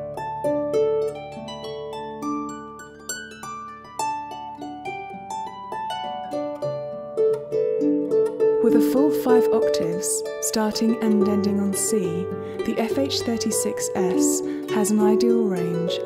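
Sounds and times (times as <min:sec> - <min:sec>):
harp playing slow air: 0:00.0 - 0:16.0.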